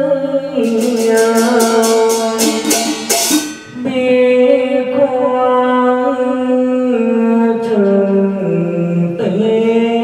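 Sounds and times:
chant-like singing: 0.0s - 3.1s
quick sharp percussion strikes: 0.6s - 4.4s.

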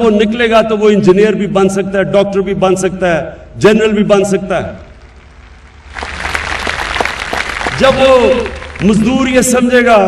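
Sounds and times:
audience applause: 5.8s - 9.4s.

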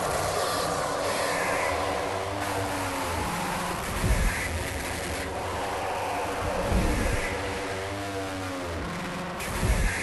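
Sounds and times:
noisy hardcore acid electronic music: 0.0s - 10.0s.

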